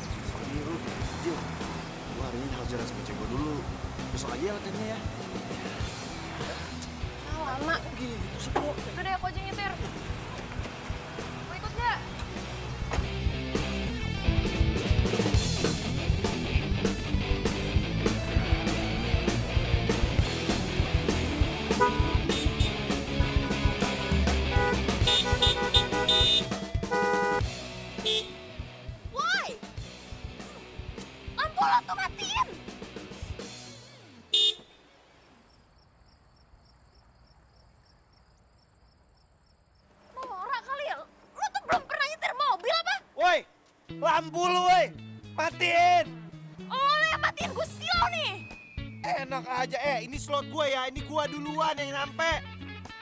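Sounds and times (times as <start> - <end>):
voices: 0.0 - 12.4, 40.1 - 46.1
background music with drum beat: 0.0 - 33.9
car horn honking: 21.6 - 28.5, 34.2 - 35.0.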